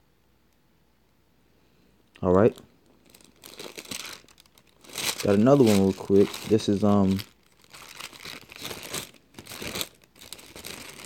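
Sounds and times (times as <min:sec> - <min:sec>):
person speaking: 0:02.2 - 0:02.7, 0:05.0 - 0:07.4
rustling and crinkling: 0:02.3 - 0:11.0.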